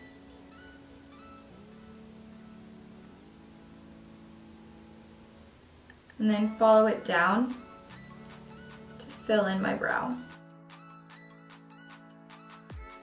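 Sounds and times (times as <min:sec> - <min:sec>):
faint background music chords: 0:00.0 - 0:13.0.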